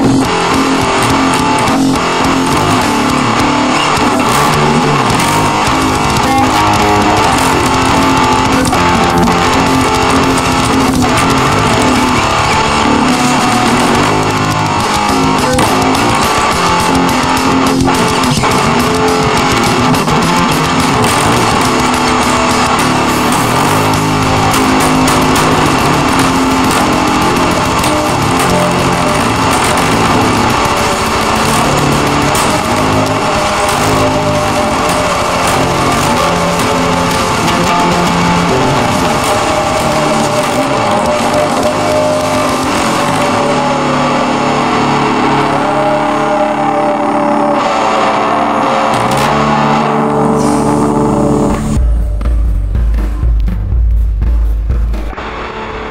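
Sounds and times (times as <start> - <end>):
hard rock instrumental: 0.0 - 55.9.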